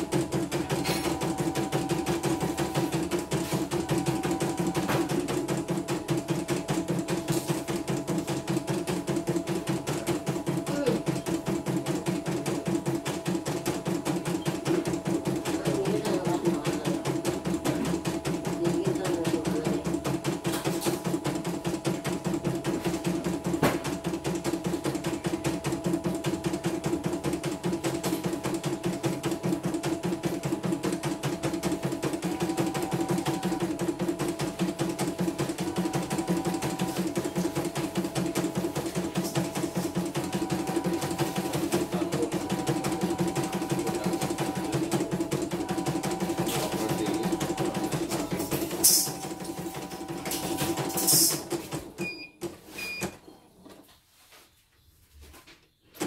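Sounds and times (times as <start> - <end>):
machine clacks: 0.0 - 51.9
embroidery machine stitching: 0.0 - 52.2.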